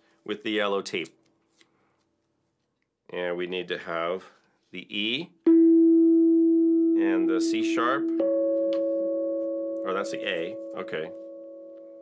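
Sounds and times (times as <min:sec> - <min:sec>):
steel tongue drum ringing: 0:05.5 - 0:12.0.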